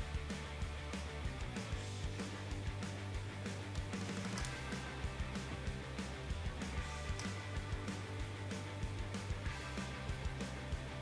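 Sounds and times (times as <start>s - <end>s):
guitar-led music with beat: 0.0s - 11.0s.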